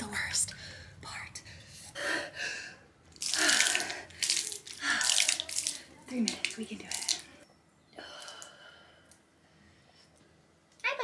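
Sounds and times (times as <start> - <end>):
water sloshing in a tub: 3.1 - 7.4.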